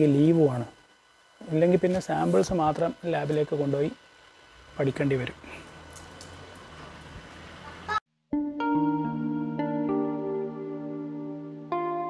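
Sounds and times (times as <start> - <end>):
low outdoor hum: 0.0 - 8.0.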